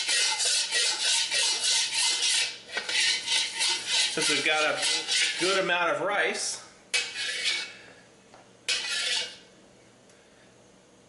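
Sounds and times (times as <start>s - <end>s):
metal spatula scraping a wok: 0.0s - 5.7s, 7.0s - 7.8s, 8.7s - 9.4s.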